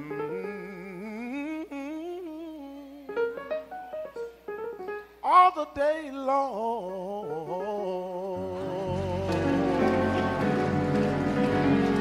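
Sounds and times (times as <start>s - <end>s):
man singing with vibrato: 0.0s - 3.7s, 5.2s - 10.5s
soft instrumental accompaniment: 0.0s - 12.0s.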